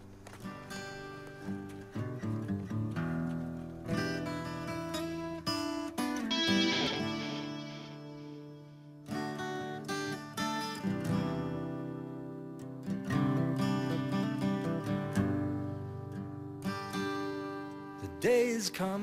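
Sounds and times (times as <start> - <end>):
acoustic guitar strumming: 0.5 - 17.9.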